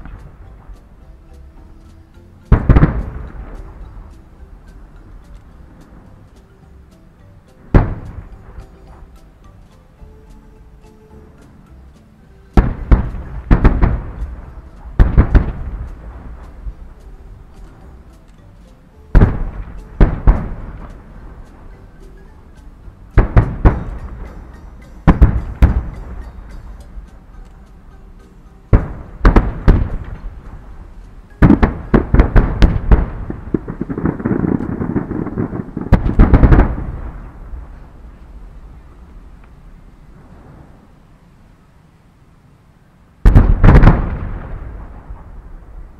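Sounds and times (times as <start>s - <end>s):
rumble of fireworks: 0.0s - 6.6s, 7.4s - 9.8s, 12.5s - 27.9s, 28.7s - 41.6s, 43.0s - 45.9s
fireworks bangs: 2.5s - 4.1s, 7.6s - 9.0s, 12.6s - 17.0s, 19.1s - 21.8s, 23.1s - 26.5s, 28.7s - 30.8s, 31.4s - 38.4s, 43.2s - 45.9s.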